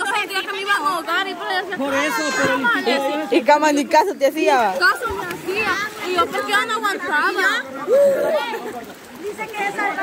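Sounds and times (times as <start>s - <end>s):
children and adults shouting: 1.8s - 3.3s.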